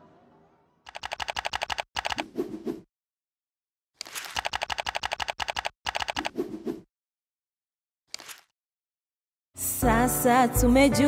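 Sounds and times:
fast keyboard typing: 0.9 - 2.2, 4.0 - 6.3.

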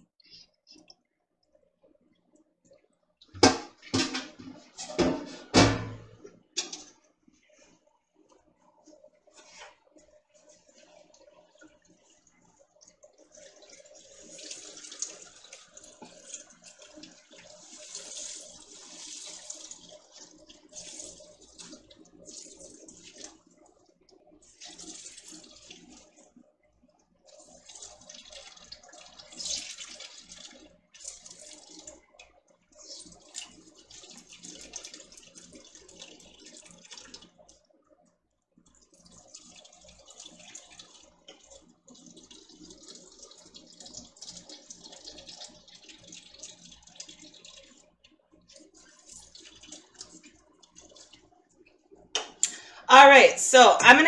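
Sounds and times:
juice splashing into pot: 9.2 - 37.7, 38.6 - 52.8.

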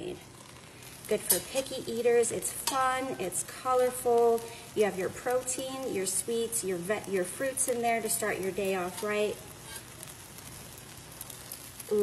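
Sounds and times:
batter sizzling in frying pan: 0.0 - 12.0.

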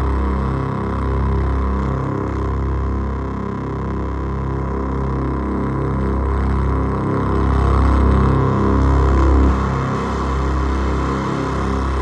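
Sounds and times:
low buzzy synthesizer drone: 0.0 - 12.0.

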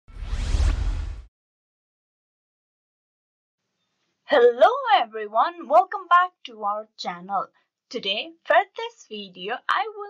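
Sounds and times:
rising whoosh sweep: 0.1 - 1.3.

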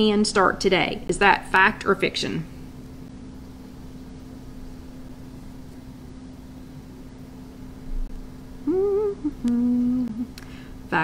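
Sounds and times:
steady low background hum: 0.0 - 11.0
woman humming: 8.6 - 10.4.

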